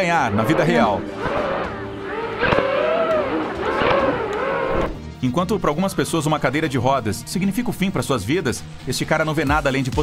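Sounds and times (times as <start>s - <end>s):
drone propellers whining: 0.0s - 5.2s.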